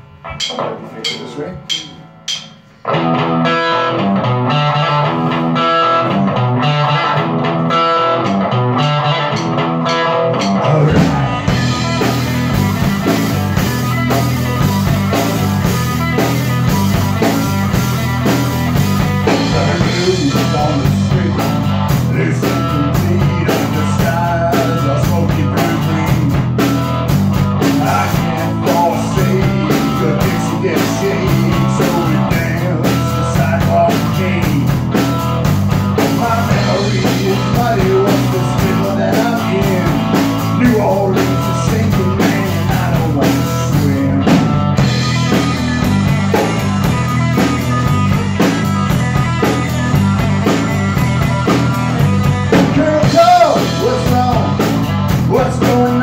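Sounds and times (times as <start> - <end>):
drum kit with cymbals: 0.0 - 2.8, 9.3 - 56.0
electric guitar: 0.0 - 56.0.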